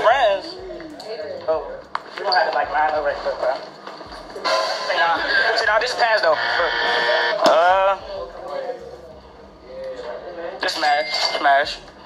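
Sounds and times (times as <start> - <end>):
faint voices in a room: 0.0 - 12.0.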